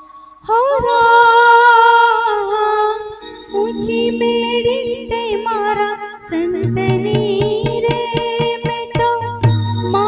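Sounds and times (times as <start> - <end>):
soft drum strokes: 6.6 - 9.8.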